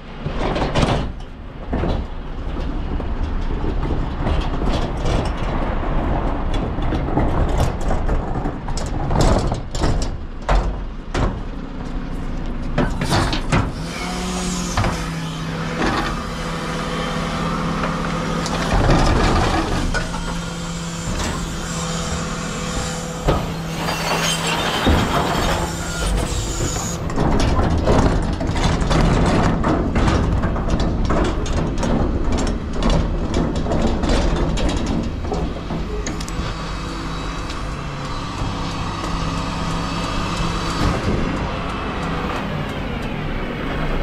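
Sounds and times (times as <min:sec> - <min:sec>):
hydraulic bin lift humming: 0:12.9 - 0:27.3, 0:35.0 - 0:44.0.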